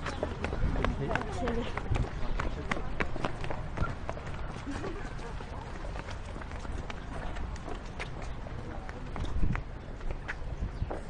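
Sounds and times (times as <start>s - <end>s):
quick footsteps on pavement: 0.0s - 11.0s.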